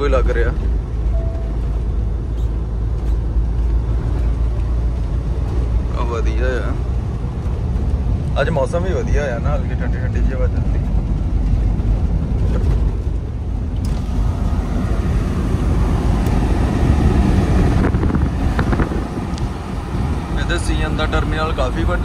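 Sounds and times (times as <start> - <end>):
truck rumbling on highway: 0.0 - 22.0.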